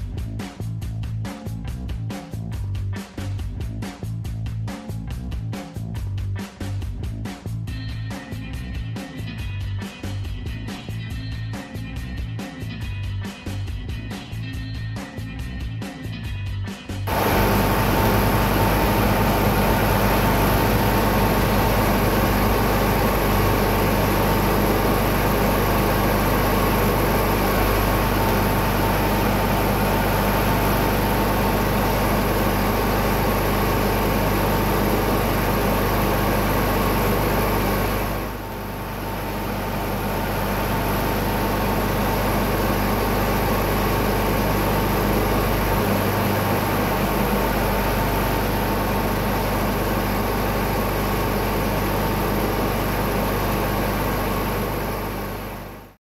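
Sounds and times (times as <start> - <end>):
tractor engine idling: 17.1 - 55.9.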